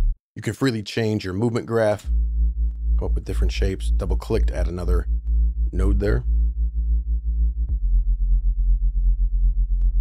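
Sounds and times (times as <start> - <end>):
pumping low bass note: 2.0 - 10.0.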